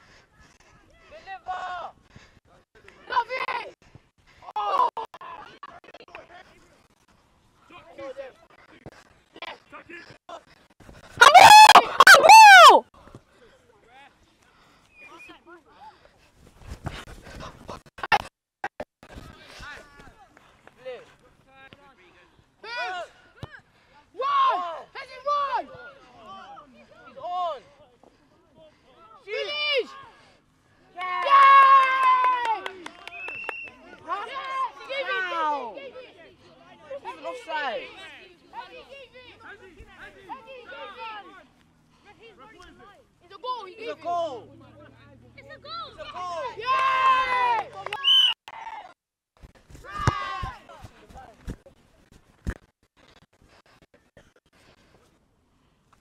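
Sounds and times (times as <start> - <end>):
people shouting and calling: 11.1 - 12.9, 45.5 - 48.0, 49.8 - 50.7.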